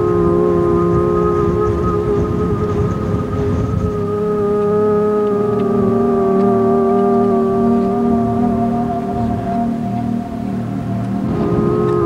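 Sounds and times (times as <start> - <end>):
low rumble: 0.0 - 12.0
organ-like drone: 0.0 - 12.0.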